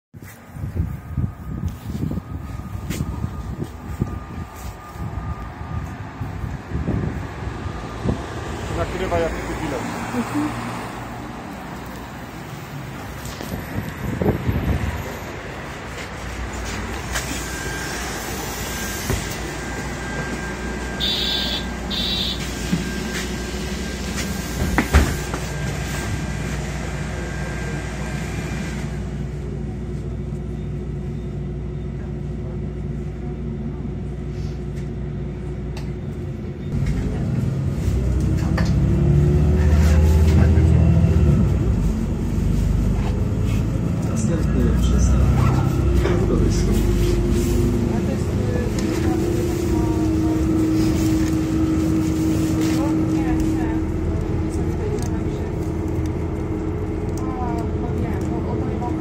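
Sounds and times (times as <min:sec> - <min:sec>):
bus engine running: 0:00.2 - 0:59.0
short beeps: 0:17.1 - 0:24.1.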